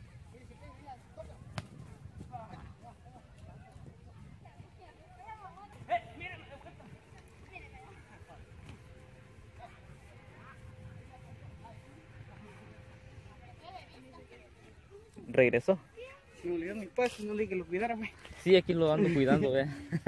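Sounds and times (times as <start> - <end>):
wind on microphone: 1.0 - 7.1.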